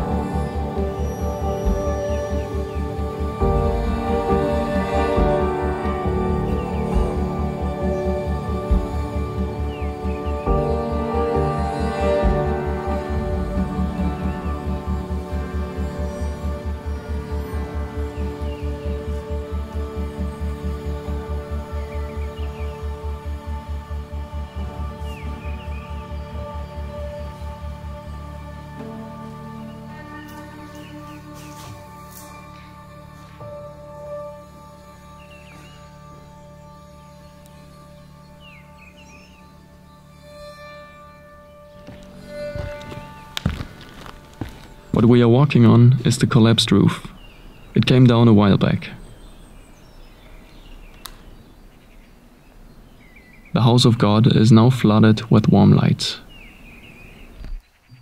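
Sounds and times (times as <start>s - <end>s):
ambient background music: 0.0s - 58.0s
distant bird chirps: 0.0s - 58.0s.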